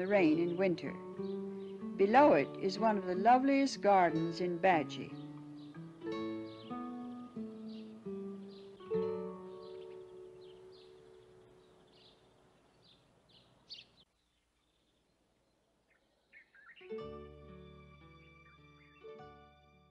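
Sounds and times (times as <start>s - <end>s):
soft acoustic guitar music: 0.0s - 12.2s, 16.8s - 19.8s
bird chirps: 0.3s - 1.9s, 5.0s - 5.8s, 6.4s - 17.0s, 18.4s - 19.2s.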